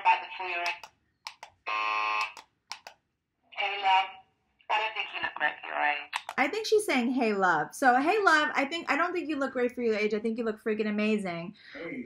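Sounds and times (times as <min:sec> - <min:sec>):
short clicks: 0:00.6 - 0:01.6, 0:02.2 - 0:03.0, 0:06.2 - 0:06.4.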